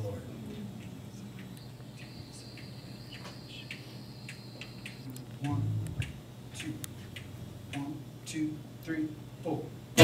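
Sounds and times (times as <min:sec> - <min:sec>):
high-pitched whine: 0:00.0 - 0:06.2
electrical hum from sound system: 0:00.0 - 0:10.0.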